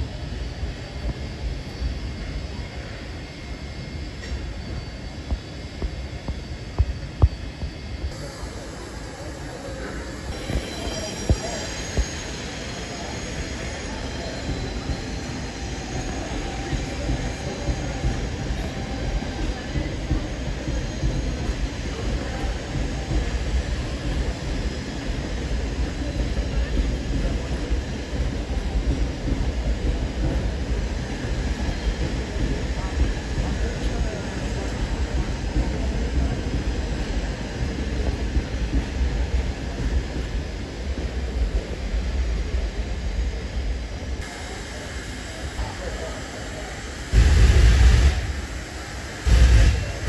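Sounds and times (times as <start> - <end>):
faint high wheel squeal: 0.0 - 38.3
train rolling past on rails: 0.0 - 50.0.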